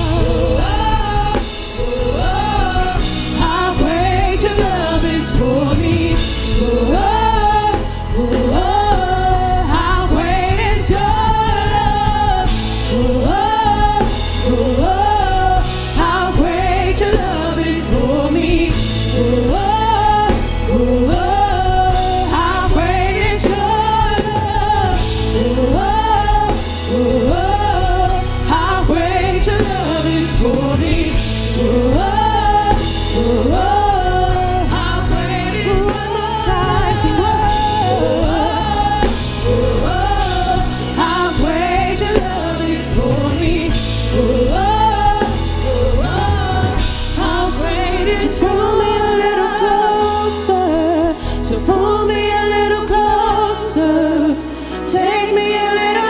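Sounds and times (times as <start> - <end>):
drum kit: 0.0 - 53.8
group of singers singing: 0.0 - 56.0
keyboard: 0.0 - 56.0.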